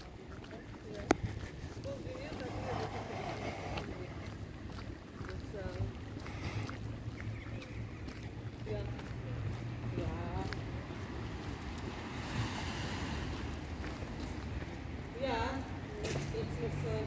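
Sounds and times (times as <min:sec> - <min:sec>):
wind buffeting microphone: 0:00.0 - 0:15.2.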